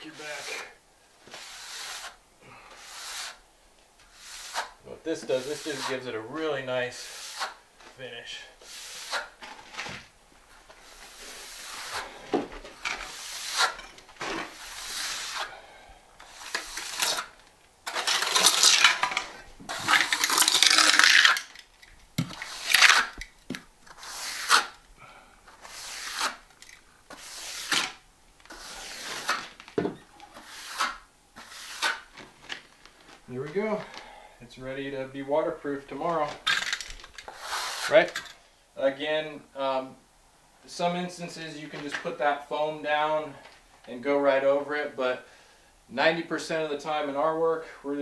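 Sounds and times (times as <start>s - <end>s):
trowel scraping mortar: 0.0s - 3.4s, 4.1s - 6.1s, 6.9s - 7.6s, 8.6s - 9.4s, 10.8s - 15.6s, 16.2s - 24.8s, 25.5s - 29.6s, 30.3s - 32.1s, 36.2s - 38.4s.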